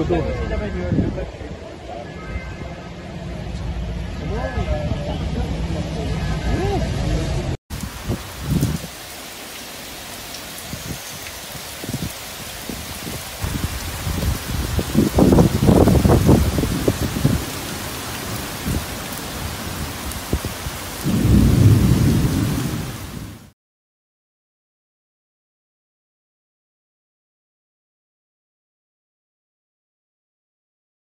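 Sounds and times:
heavy rain falling: 5.2 - 23.6
thunder rumbling: 7.7 - 9.1, 10.6 - 23.5.

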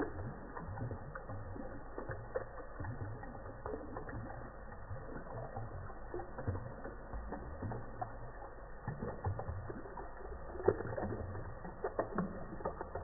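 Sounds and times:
slowed water drops plinking: 0.0 - 13.0.

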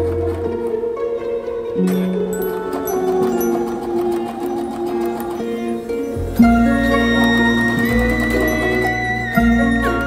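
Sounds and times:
background music with held notes: 0.0 - 10.0
sewing machine stitching: 2.5 - 5.7, 7.0 - 9.2.

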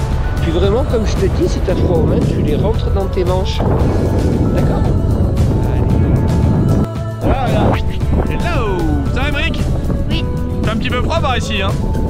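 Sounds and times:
background music: 0.0 - 12.0
wind rumbling on microphone: 0.0 - 12.0.

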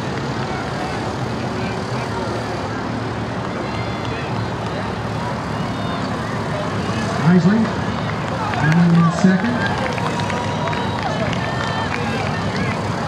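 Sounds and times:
faint indistinct voices: 0.0 - 13.0
steady rushing noise: 0.0 - 13.0.

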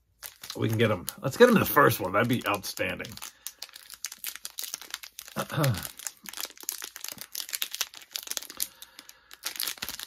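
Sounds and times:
wrapper crinkling and tearing: 0.0 - 10.0.

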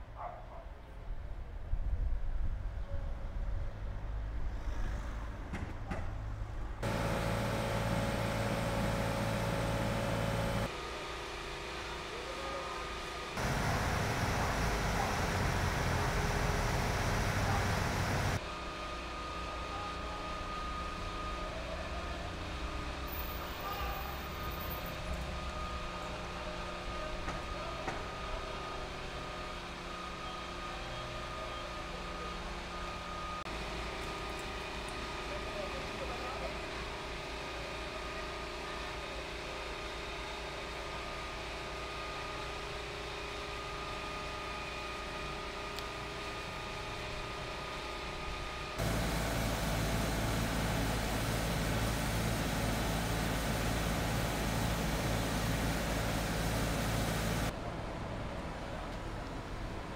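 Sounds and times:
heavy vehicle engines idling: 6.1 - 10.7, 13.3 - 18.4, 19.2 - 38.0, 46.1 - 59.9.

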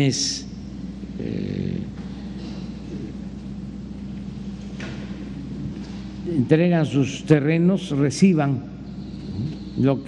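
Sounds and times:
steady low hum: 0.0 - 10.0
man murmuring: 1.1 - 2.1.

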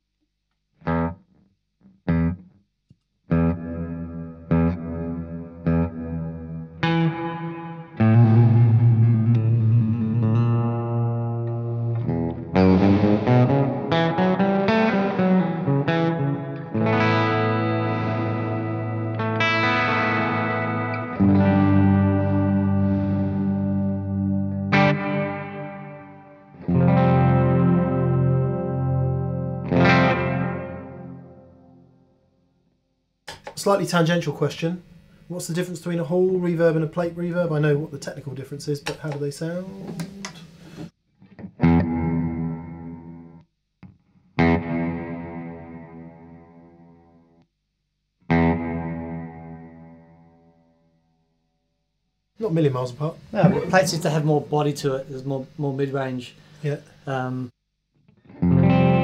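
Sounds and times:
electric guitar with reverb: 3.3 - 32.2, 41.2 - 47.4, 48.3 - 50.6, 58.1 - 59.0.

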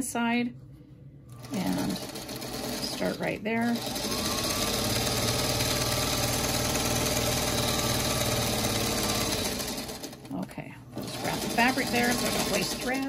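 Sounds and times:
electric sewing machine stitching: 1.3 - 13.0.

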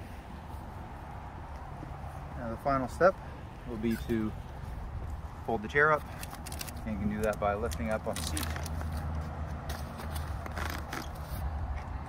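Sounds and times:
wheelchair frame clicking and rattling: 6.1 - 11.4.

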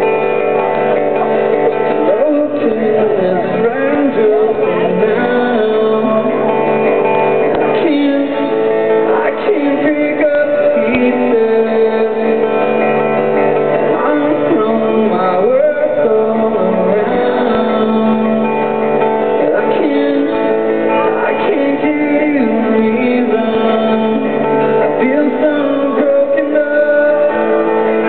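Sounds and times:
acoustic guitar strumming: 0.0 - 28.0
man singing: 1.7 - 28.0.

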